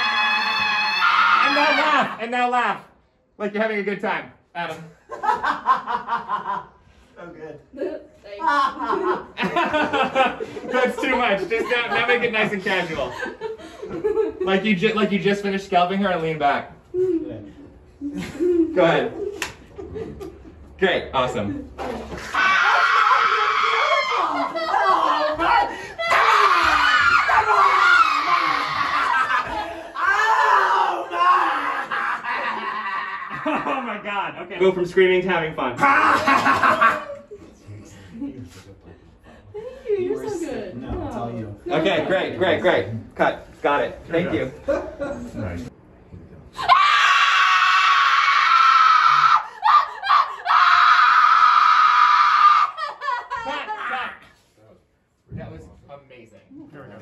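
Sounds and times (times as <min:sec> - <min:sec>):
people screaming: 0:00.0 - 0:02.2, 0:22.1 - 0:33.4, 0:46.6 - 0:54.1.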